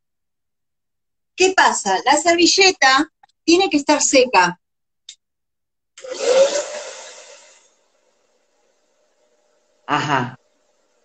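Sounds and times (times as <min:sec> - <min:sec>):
hair dryer blowing air: 0:06.0 - 0:07.7.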